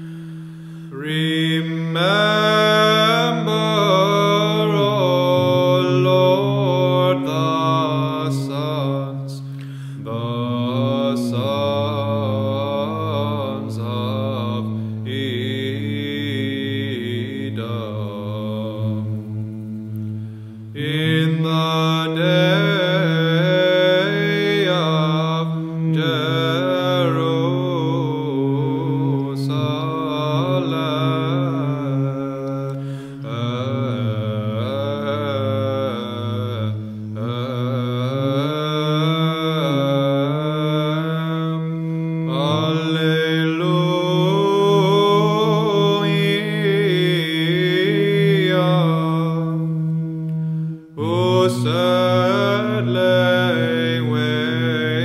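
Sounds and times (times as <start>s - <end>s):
choir chanting a hymn: 0.0s - 55.0s
low held drone note: 0.0s - 55.0s.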